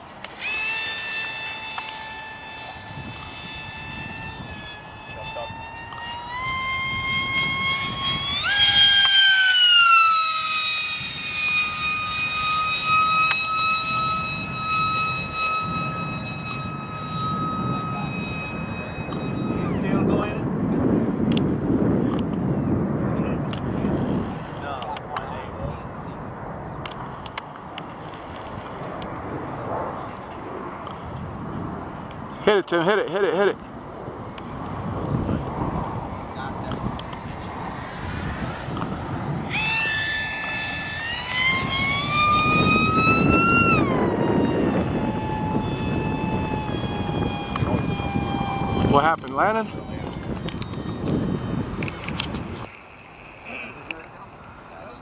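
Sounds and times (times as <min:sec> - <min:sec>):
electric motor and propeller whining: 0:00.0 - 0:55.0
low noisy rumble: 0:00.0 - 0:55.0.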